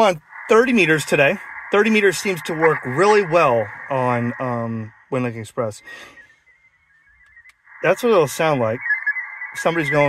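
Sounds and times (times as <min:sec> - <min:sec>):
radio digital data signal tones: 0:00.0 - 0:10.0.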